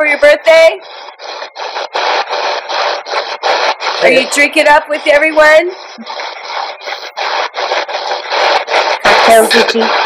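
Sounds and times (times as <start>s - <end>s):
choppy radio static bursts: 0.0s - 10.0s.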